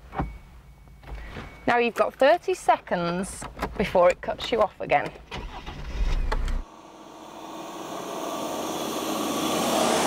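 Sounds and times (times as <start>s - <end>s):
diesel car passing: 6.7s - 10.0s.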